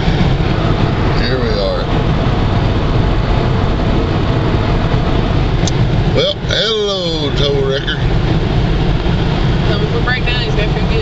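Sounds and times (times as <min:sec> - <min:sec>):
road noise inside cab: 0:00.0 - 0:11.0
vehicle engine rumble: 0:00.0 - 0:11.0.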